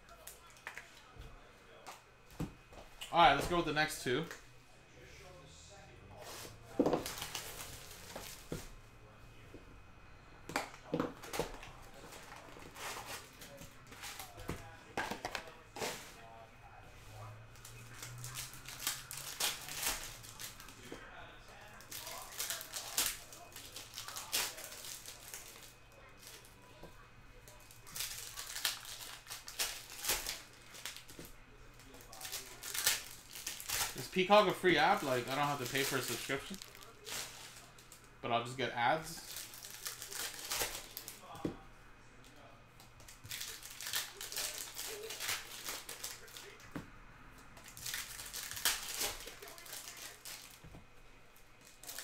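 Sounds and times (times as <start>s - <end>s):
foil wrappers tearing and crinkling: 6.8s - 8.6s, 17.5s - 26.5s, 27.4s - 41.4s, 43.0s - 46.7s, 47.6s - 50.6s, 51.6s - 52.0s.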